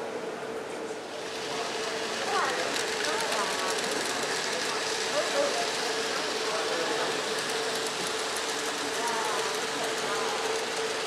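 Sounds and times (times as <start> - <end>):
model train wheels clicking: 1.2 - 11.0
small electric motor running: 1.2 - 11.0.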